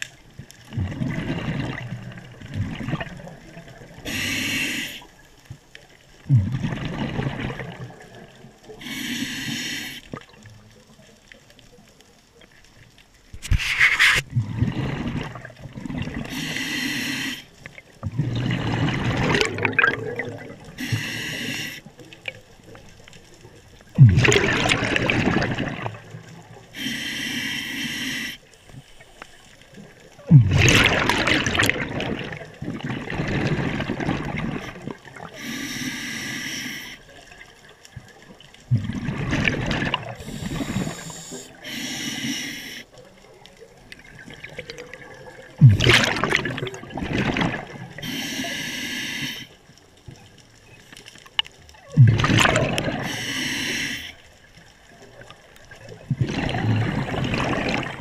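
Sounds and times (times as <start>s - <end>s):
bubbling exhaled air: 0.7s - 5.1s, 6.2s - 10.4s, 14.2s - 21.9s, 23.9s - 28.4s, 30.2s - 36.9s, 38.7s - 42.9s, 44.0s - 49.5s, 51.8s - 54.2s, 55.9s - 58.0s
hissing regulator inhalations: 4.0s - 5.1s, 8.7s - 10.1s, 16.2s - 17.6s, 20.7s - 21.9s, 26.7s - 29.6s, 35.2s - 37.1s, 40.2s - 43.0s, 48.0s - 49.6s, 53.0s - 54.3s.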